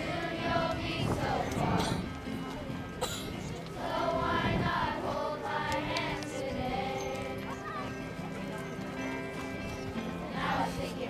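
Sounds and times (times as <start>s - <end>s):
children's choir singing: 0.0s - 2.2s, 3.6s - 8.1s, 10.1s - 11.0s
acoustic guitar: 0.0s - 11.0s.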